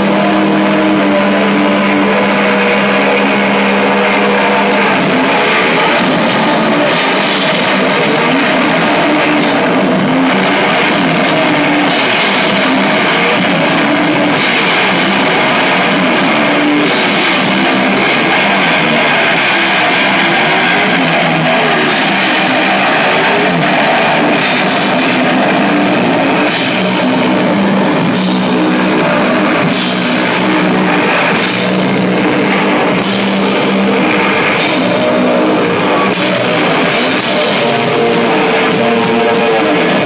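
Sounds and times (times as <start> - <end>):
cymbal crash: 0.0 - 40.0
heavy rock music: 0.0 - 40.0.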